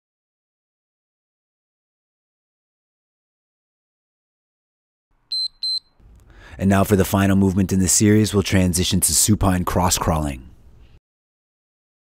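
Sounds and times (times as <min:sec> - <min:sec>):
short high electronic beeps: 0:05.3 - 0:06.0.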